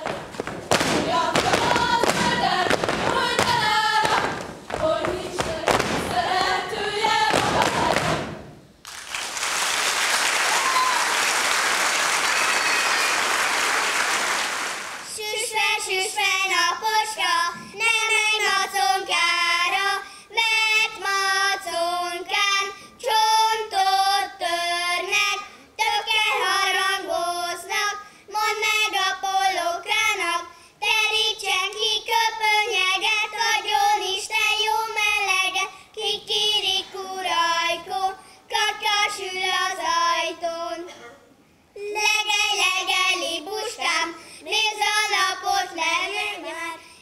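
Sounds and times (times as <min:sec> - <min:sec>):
children singing in unison: 0:00.9 - 0:08.4, 0:15.1 - 0:41.0, 0:41.8 - 0:46.8.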